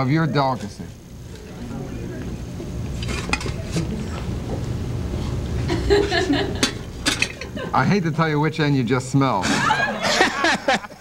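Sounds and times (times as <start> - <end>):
low room rumble: 0.0 - 11.0
plates and cutlery clinking: 2.9 - 4.6, 5.7 - 7.7.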